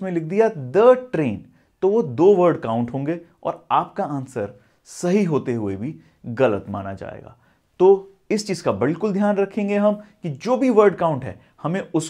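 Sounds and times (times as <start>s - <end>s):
man speaking: 0.0s - 12.0s
sharp breath in: 7.4s - 7.8s.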